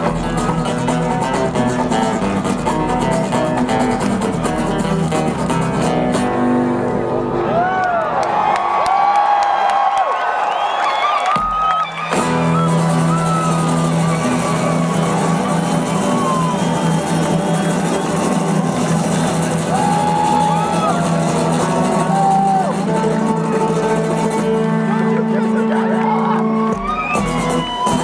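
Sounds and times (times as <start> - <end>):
acoustic guitars playing: 0.0 - 7.7, 12.0 - 28.0
crowd cheering and whooping: 7.2 - 23.8, 25.7 - 28.0.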